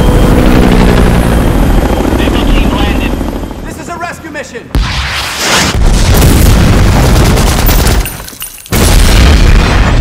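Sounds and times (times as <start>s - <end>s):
rumble of blasts: 0.0s - 8.1s, 8.7s - 10.0s
explosion boom: 4.8s - 7.6s
gunfire: 4.8s - 10.0s.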